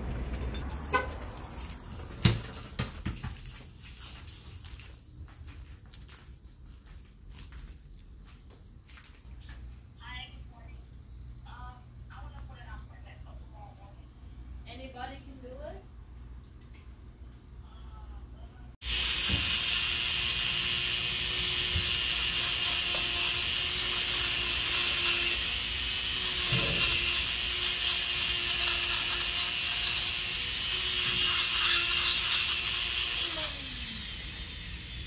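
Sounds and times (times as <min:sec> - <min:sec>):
electric nail drill filing: 0:18.8 - 0:35.0.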